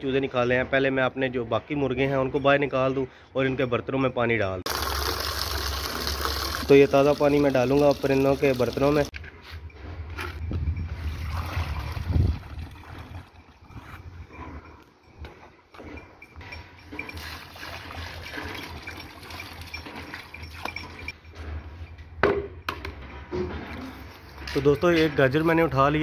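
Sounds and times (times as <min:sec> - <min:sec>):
water pouring and splashing: 0:04.7 - 0:09.2, 0:10.9 - 0:13.8, 0:17.0 - 0:21.1.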